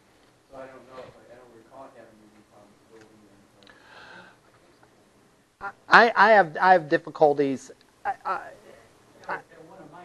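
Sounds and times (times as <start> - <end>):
distant voices talking quietly: 0.5 - 5.9
man talking close to microphone: 5.9 - 7.8.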